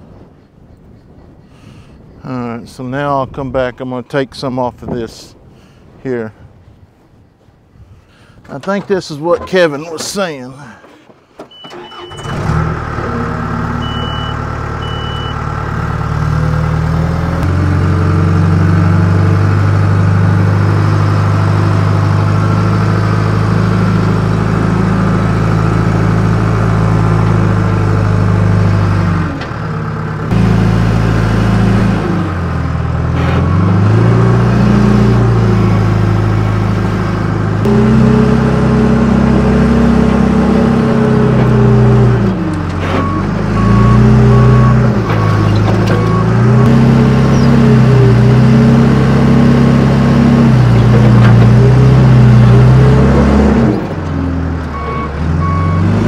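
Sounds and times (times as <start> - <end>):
diesel engine under load: 8.1 - 56.0.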